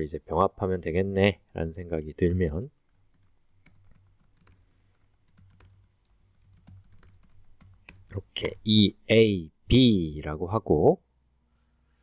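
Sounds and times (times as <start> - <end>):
faint keyboard keystrokes: 2.8 - 8.2.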